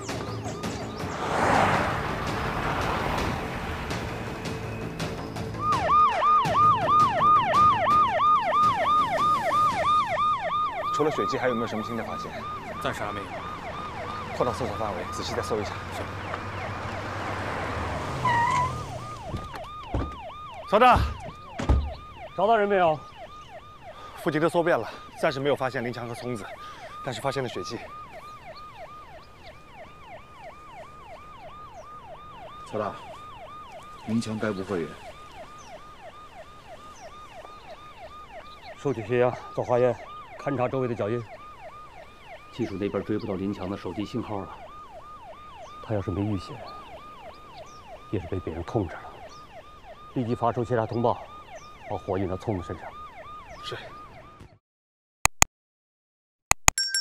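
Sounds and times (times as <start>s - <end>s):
police siren yelp: 0.0s - 54.6s.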